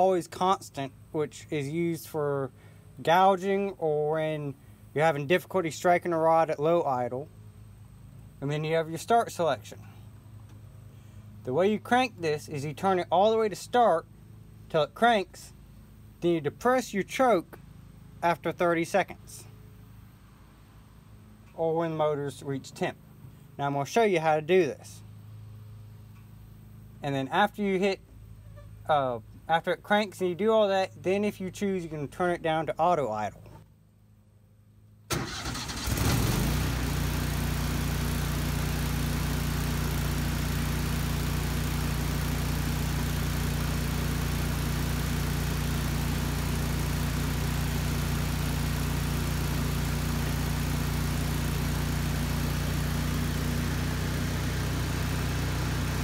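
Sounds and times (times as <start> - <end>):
generator engine running: 35.1 - 56.0.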